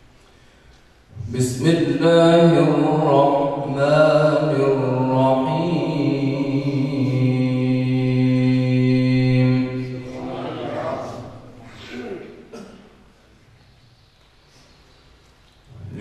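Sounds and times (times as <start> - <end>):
man chanting recitation: 1.2 - 12.1, 15.7 - 16.0.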